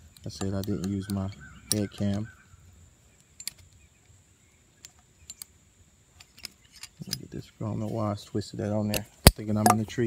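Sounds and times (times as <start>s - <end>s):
metal carabiner clicking: 0.1s - 2.3s, 3.2s - 3.8s, 4.8s - 5.6s, 6.2s - 7.3s, 8.9s - 10.0s.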